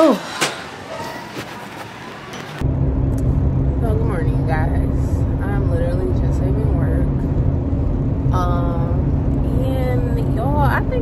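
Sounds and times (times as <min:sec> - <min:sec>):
car cabin road and engine rumble: 0:00.9 - 0:11.0
low hum: 0:02.0 - 0:11.0.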